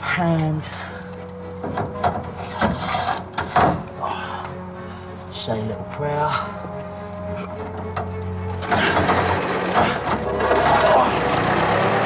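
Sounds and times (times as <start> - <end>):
metallic clunks and rattles: 1.2 - 4.0, 7.5 - 11.5.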